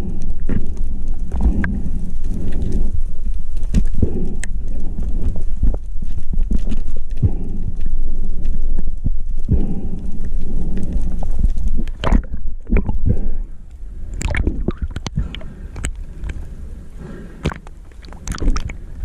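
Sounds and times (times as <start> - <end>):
underwater gurgling rumble: 0.0 - 19.0.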